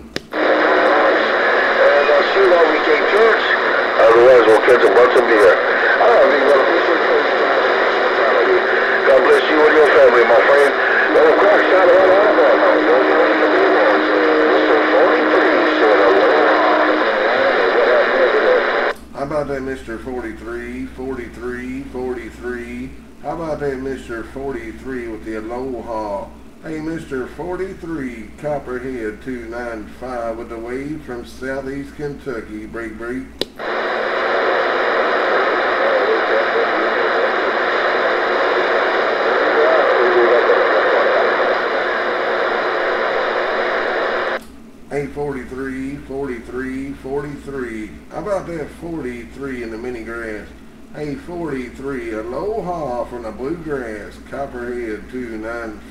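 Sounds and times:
steady tone: 0.3s - 18.9s
loud radio static: 0.3s - 19.0s, 33.6s - 44.4s
garbled warbling radio voices: 0.4s - 18.9s, 33.6s - 44.4s.

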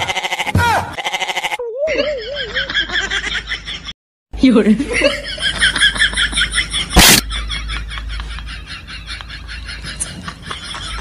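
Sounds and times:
goat bleating: 0.0s - 1.7s.

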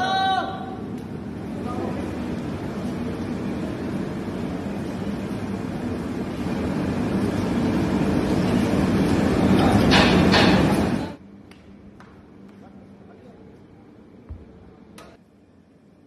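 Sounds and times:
rumbling kitchen noise: 0.7s - 13.0s.

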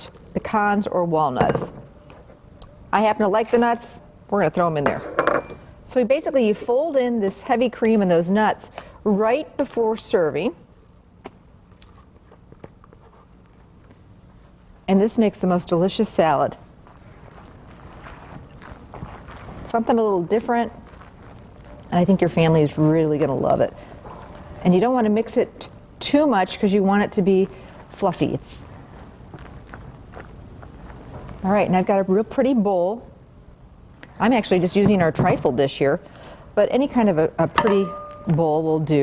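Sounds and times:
low room hum: 0.0s - 39.0s
spatula tapping steel bowl: 37.6s - 38.4s.

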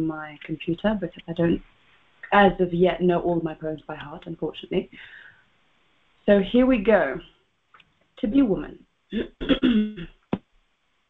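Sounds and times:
woman clearing her throat: 9.1s - 10.2s.

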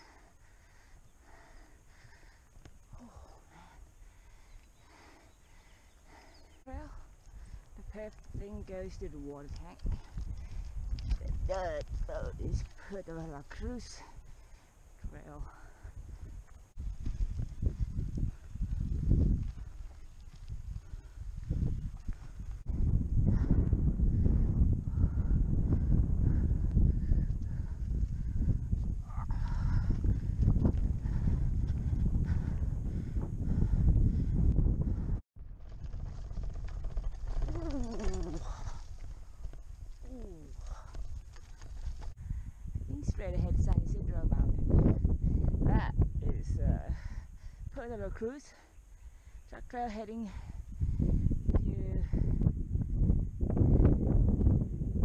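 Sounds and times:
wind buffeting microphone: 0.0s - 55.0s
tyres rolling over dirt trail: 2.0s - 14.7s, 15.6s - 22.6s, 35.4s - 42.4s.

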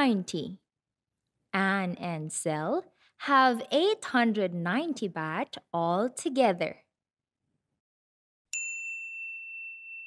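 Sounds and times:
bright bell ding: 8.5s - 10.0s.

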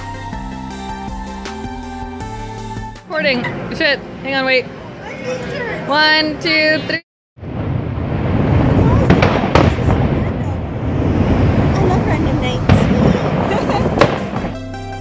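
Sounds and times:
music: 0.0s - 3.5s, 13.4s - 15.0s
fireworks barrage: 7.4s - 14.8s
sharp firework bangs: 7.4s - 14.8s.

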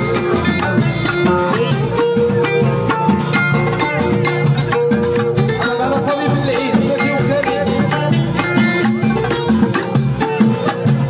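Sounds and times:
plucked string melody: 0.0s - 11.0s
steady beat: 0.0s - 11.0s.

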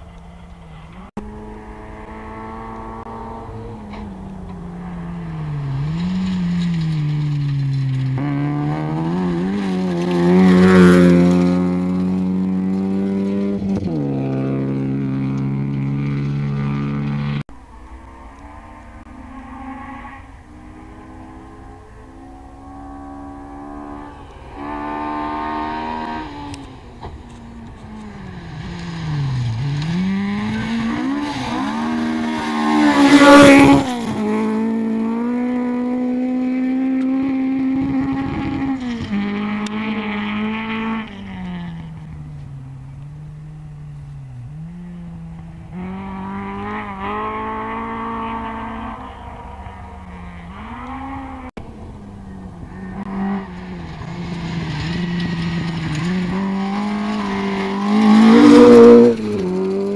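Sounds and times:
rally car engine passing: 0.0s - 59.9s.

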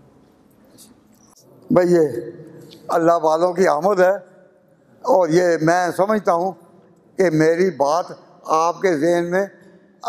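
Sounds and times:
faint background noise: 0.0s - 10.0s
man speaking into a microphone: 1.4s - 10.0s.

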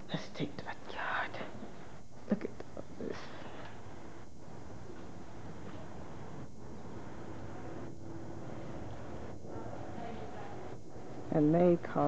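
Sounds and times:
person whispering: 0.0s - 1.7s
faint background hiss: 0.0s - 12.0s.

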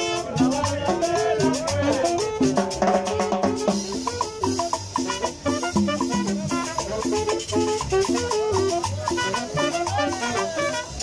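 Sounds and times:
conga drum: 0.0s - 11.0s
salsa band playing: 0.0s - 11.0s.

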